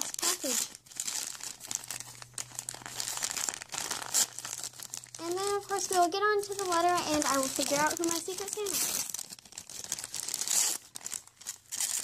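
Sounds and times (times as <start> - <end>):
wrapping paper crinkling and tearing: 0.0 - 12.0.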